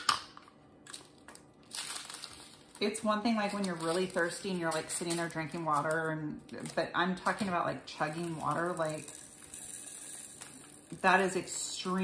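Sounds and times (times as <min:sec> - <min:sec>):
plastic bag rustling: 0:00.9 - 0:12.0.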